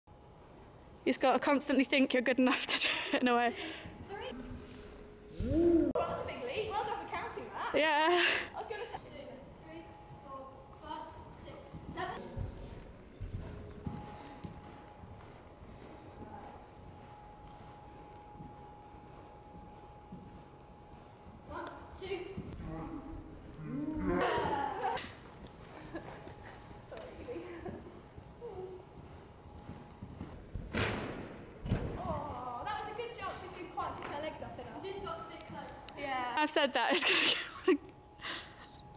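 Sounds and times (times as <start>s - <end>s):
hooves pushing off: 10.1s - 22.6s, 24.1s - 30.4s
horse hoofbeats on sand: 10.8s - 22.6s, 27.6s - 30.6s.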